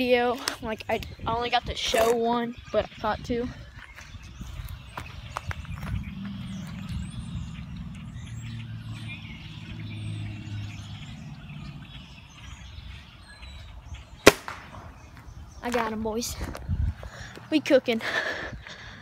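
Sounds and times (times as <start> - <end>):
passing vehicle rumble: 5.1 - 14.1.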